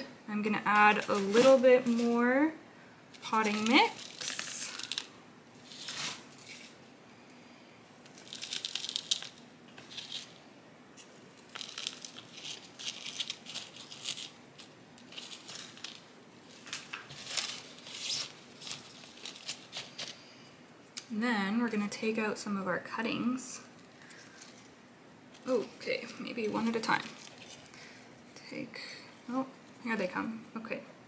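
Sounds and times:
dry soil rustling and crackling: 0.7 - 2.3, 11.5 - 20.2.

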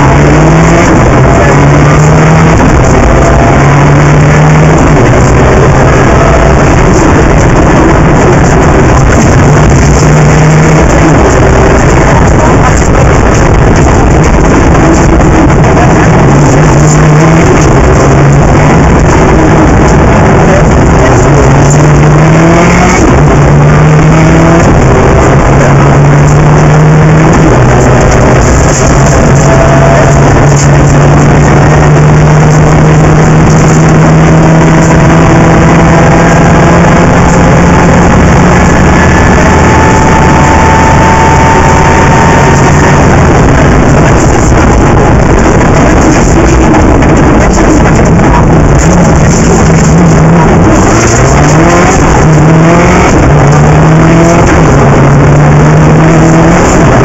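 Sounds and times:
rally car engine accelerating: 0.0 - 57.0.

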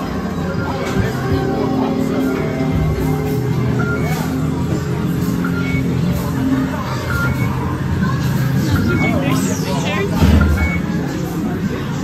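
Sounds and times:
indistinct voices: 0.0 - 12.0
music-like sound: 0.0 - 12.0
short high electronic beeps: 5.4 - 6.0, 7.1 - 7.6, 8.7 - 10.9.

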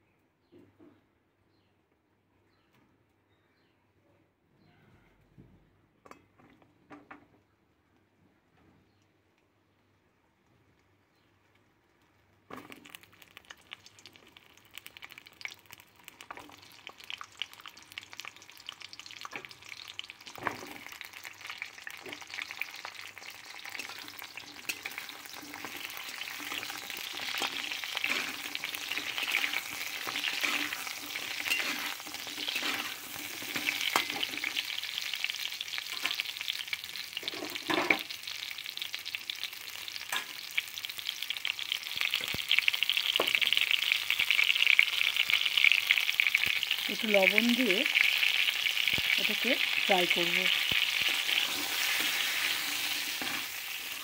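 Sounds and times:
knocks of stirring in pan: 12.5 - 38.2, 47.8 - 54.0
vegetables sizzling in hot oil: 12.5 - 54.0.

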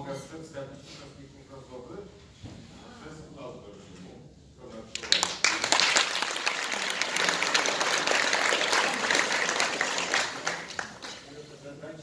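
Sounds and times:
audience applauding: 5.0 - 11.3.

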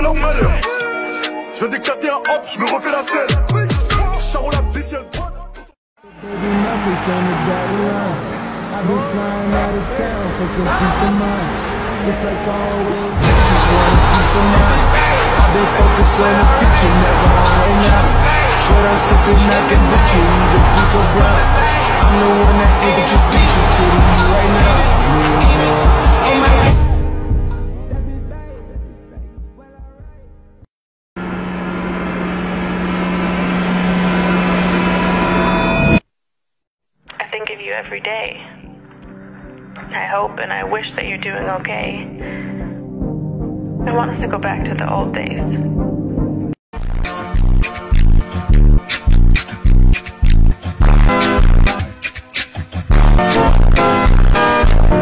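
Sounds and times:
music: 0.0 - 30.7, 37.1 - 55.0
stadium crowd noise: 6.1 - 26.7.

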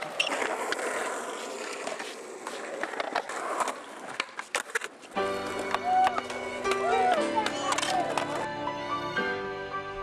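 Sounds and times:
skateboard clacks: 0.0 - 8.5
skateboard wheels rolling on concrete: 0.0 - 10.0.

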